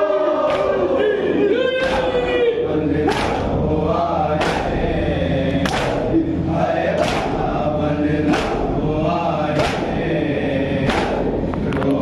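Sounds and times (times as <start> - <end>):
men chanting a lament: 0.0 - 12.0
chest-beating slaps: 0.5 - 0.8, 1.8 - 2.2, 3.0 - 3.6, 4.4 - 4.8, 5.5 - 6.2, 7.0 - 7.5, 8.2 - 8.8, 9.5 - 10.0, 10.8 - 11.6.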